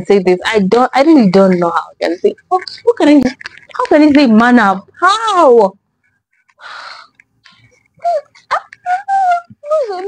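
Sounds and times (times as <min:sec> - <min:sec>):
woman sobbing: 0:08.0 - 0:10.0.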